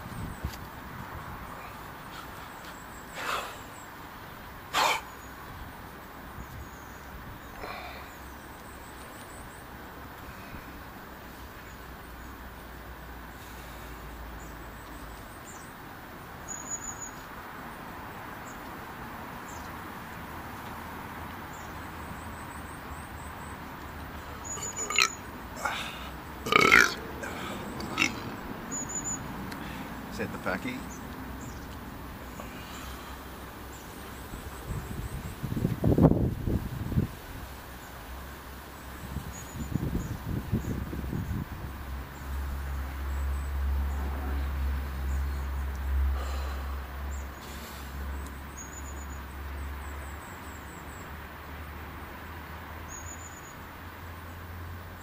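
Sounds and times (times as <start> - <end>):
man belching: 24.6 - 28.3.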